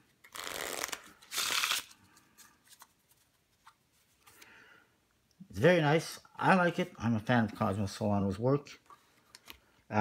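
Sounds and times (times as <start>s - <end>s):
playing cards riffle-shuffled: 0.2s - 4.4s.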